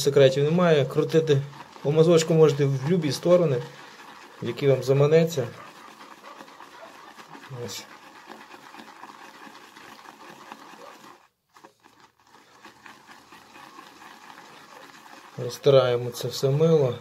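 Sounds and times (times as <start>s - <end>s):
shaving brush swishing in bowl: 0.0s - 17.0s.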